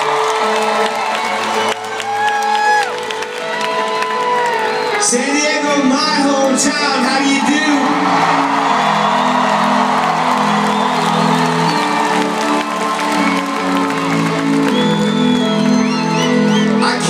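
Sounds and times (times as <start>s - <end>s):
audience whoops and whistles: 0.0s - 5.0s, 7.6s - 17.0s
crowd cheering: 0.0s - 17.0s
live rock band playing chords: 4.8s - 17.0s.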